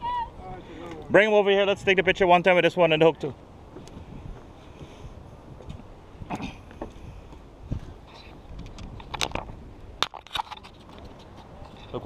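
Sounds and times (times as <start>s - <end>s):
wind rumble on microphone: 3.6s - 12.0s
camera handling scrapes and knocks: 8.2s - 12.0s.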